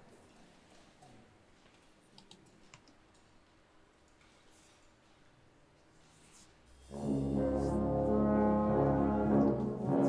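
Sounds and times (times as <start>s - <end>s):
brass band chord: 6.9s - 10.0s.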